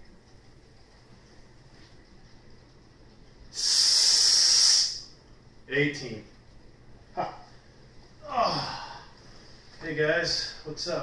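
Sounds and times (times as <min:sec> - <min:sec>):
loud steady hiss: 0:03.5 - 0:06.2.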